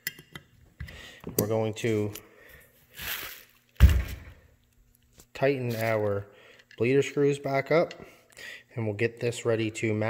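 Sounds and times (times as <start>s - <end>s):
dull thunk of metal part set down: 3.8s - 4.4s.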